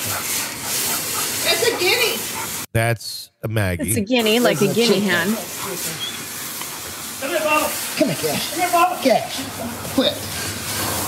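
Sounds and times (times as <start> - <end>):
background noise hiss: 0.1 - 11.0.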